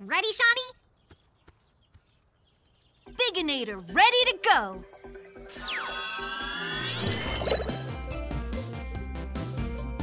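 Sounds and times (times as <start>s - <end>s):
ray-gun electronic zap: 5.5s - 8.0s
background music with bass: 7.0s - 10.0s.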